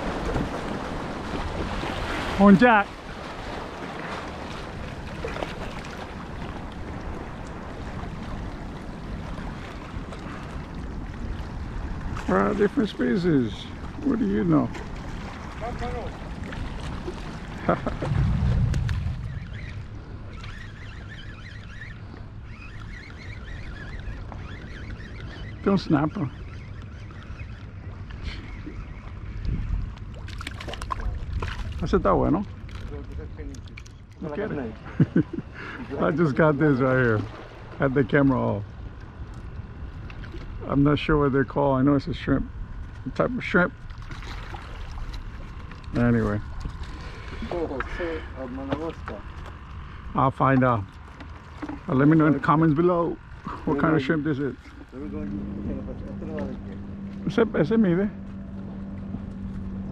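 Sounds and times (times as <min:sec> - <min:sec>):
waves lapping against rocks: 0:00.0 - 0:21.9, 0:28.0 - 0:38.6, 0:43.7 - 0:53.7
wind buffeting microphone: 0:00.0 - 0:59.9.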